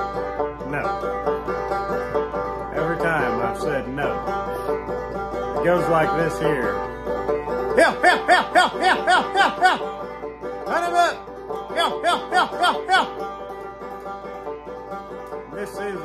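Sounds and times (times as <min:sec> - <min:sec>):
banjo ringing: 0:00.0 - 0:16.0
man whooping hound call: 0:07.7 - 0:10.0, 0:10.7 - 0:13.3.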